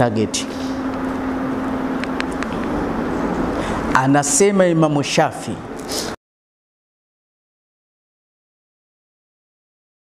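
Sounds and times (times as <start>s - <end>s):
mechanical hum with droning tone: 0.0s - 6.2s.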